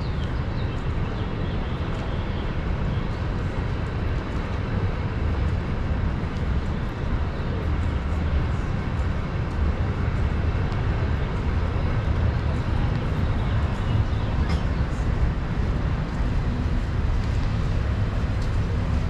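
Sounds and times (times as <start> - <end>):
city traffic rumble: 0.0 - 19.0.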